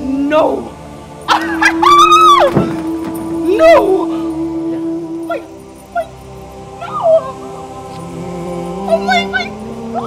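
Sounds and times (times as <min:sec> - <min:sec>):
background music: 0:00.0 - 0:10.0
woman squealing with delight: 0:01.4 - 0:02.6.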